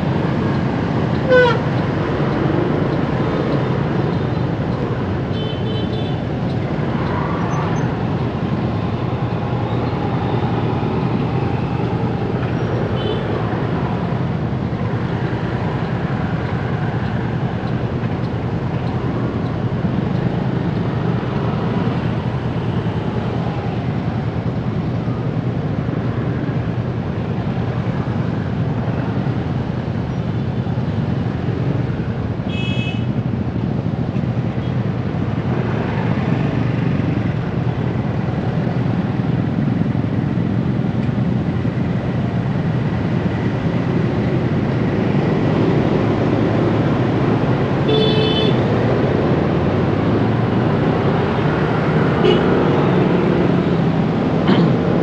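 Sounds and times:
motorbike and scooter traffic: 0.0s - 55.0s.

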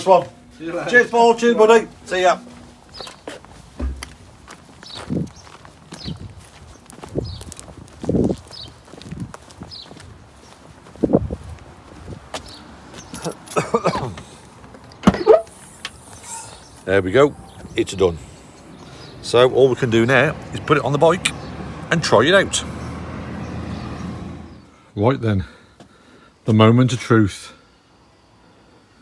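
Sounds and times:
footsteps on tarmac: 0.1s - 24.7s, 25.6s - 26.0s.

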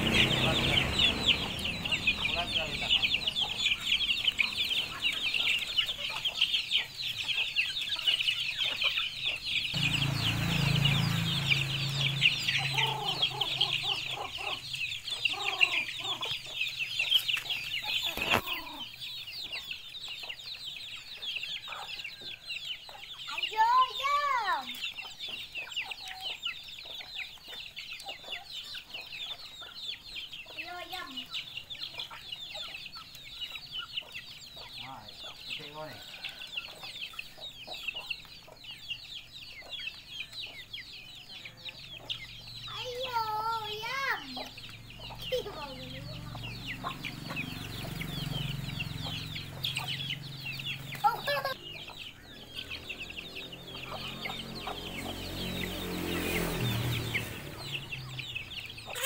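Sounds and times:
loud rising and falling call: 0.0s - 6.1s, 9.6s - 16.4s, 42.6s - 59.0s
chickens clucking: 0.0s - 59.0s
chicks peeping: 0.0s - 59.0s.

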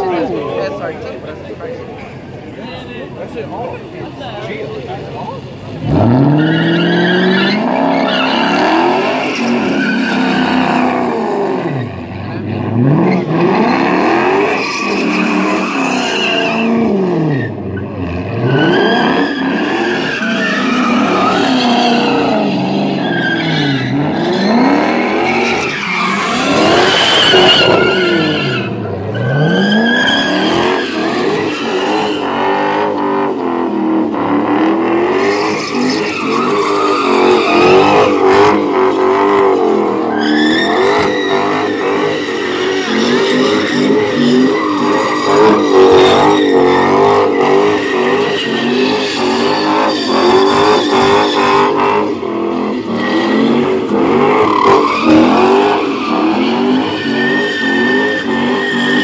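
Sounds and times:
car engine revving: 0.0s - 59.0s
tyres squealing on pavement: 0.0s - 59.0s.

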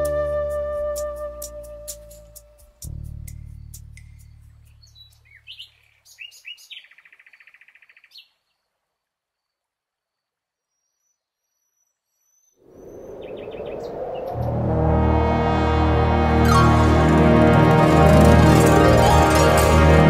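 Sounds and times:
small birds chirping: 3.3s - 8.7s, 10.6s - 14.5s
bird trill: 3.4s - 8.3s
rush of noise: 12.6s - 20.0s
low bass note: 14.4s - 20.0s.

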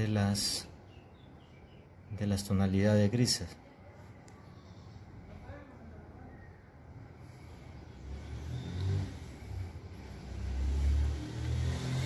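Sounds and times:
motor vehicle rumbling by: 6.9s - 12.0s.

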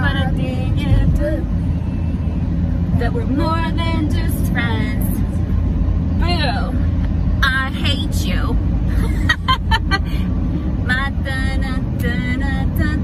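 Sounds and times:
car road and engine rumble: 0.0s - 13.0s
women singing and vocalizing: 3.0s - 5.2s.

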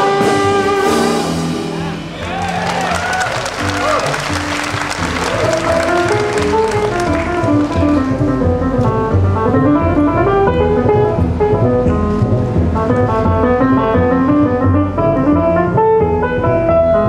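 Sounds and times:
big band jazz: 0.0s - 17.0s
piano running lines: 0.0s - 17.0s
upright bass: 0.0s - 17.0s
audience applause and cheers: 1.6s - 8.6s.

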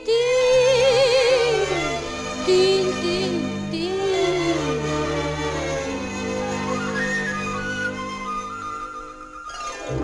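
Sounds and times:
flute melody: 1.0s - 10.0s.

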